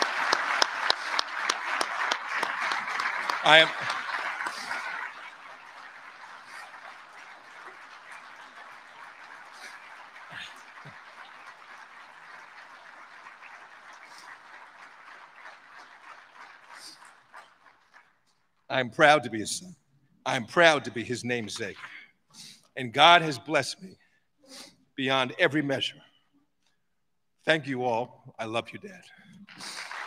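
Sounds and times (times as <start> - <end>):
audience applauding: 0.0 - 18.4, 29.3 - 30.0.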